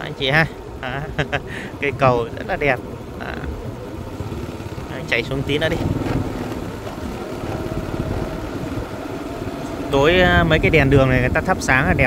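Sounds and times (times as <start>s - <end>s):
motorbike engine running: 1.9s - 12.0s.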